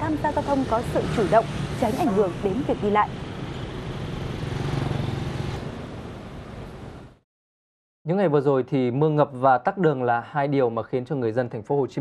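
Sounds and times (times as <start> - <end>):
road traffic rumble: 0.0 - 7.2.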